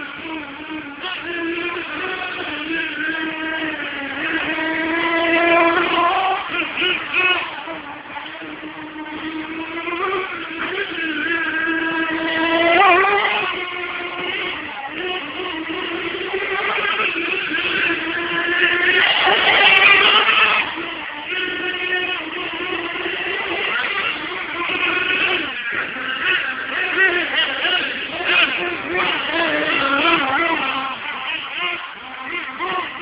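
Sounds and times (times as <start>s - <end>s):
rc car motors whining: 0.0s - 33.0s.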